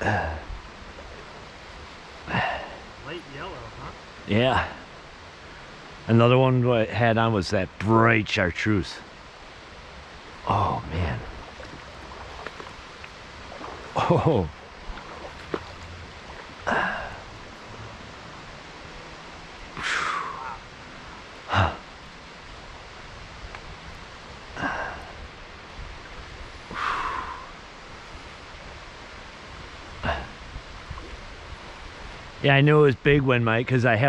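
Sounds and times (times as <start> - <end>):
flowing river water: 0.0 - 34.0.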